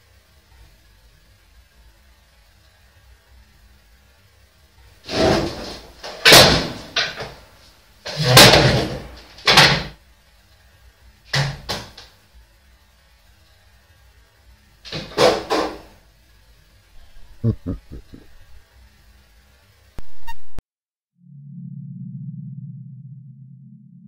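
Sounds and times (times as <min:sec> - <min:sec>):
furniture banging and crashing: 0:05.1 - 0:07.4, 0:08.1 - 0:09.9.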